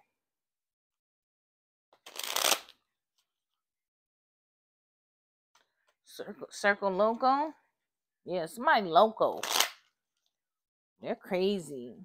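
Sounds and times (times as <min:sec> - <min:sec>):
cards being shuffled: 0:02.0 - 0:02.8, 0:09.4 - 0:09.9.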